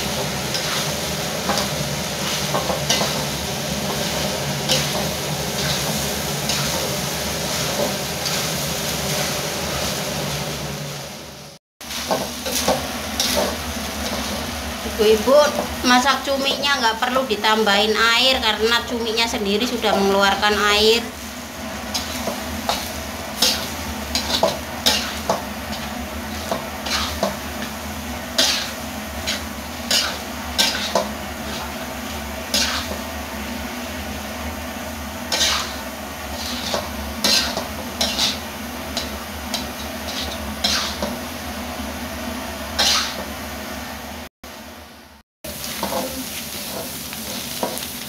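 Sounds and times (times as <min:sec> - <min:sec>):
steady sizzling: 0:00.0 - 0:48.0
metal spatula scraping a wok: 0:00.1 - 0:10.0, 0:11.9 - 0:14.5, 0:21.9 - 0:33.1, 0:35.3 - 0:41.2, 0:42.8 - 0:43.3, 0:45.6 - 0:47.9.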